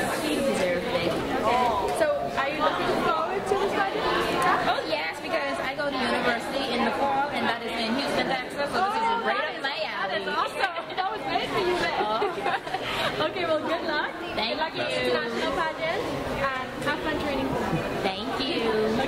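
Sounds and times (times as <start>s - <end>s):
crowd chatter in large hall: 0.0s - 19.0s.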